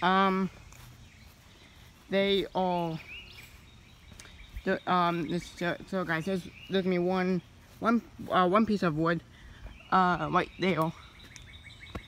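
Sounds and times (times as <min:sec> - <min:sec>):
person speaking: 0:00.0 - 0:00.9, 0:01.9 - 0:03.4, 0:04.6 - 0:11.0.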